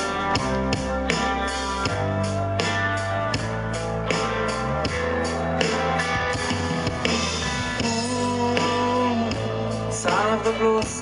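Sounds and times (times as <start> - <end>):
rock band instrumental: 0.0 - 11.0.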